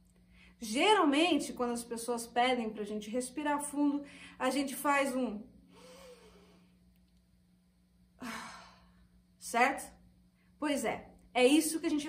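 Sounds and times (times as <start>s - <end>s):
woman sighing: 8.2s - 9.0s.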